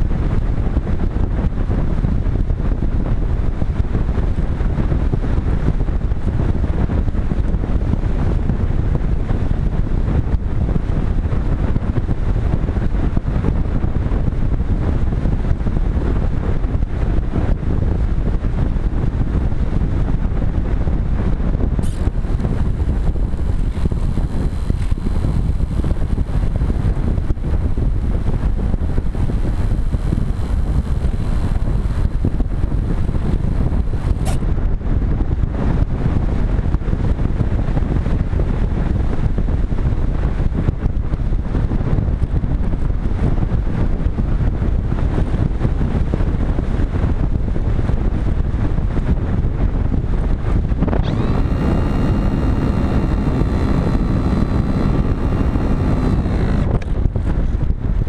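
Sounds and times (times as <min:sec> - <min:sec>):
wind rushing over camera: 0:00.0 - 0:58.0
electric motor whine: 0:21.8 - 0:34.5, 0:50.2 - 0:57.6.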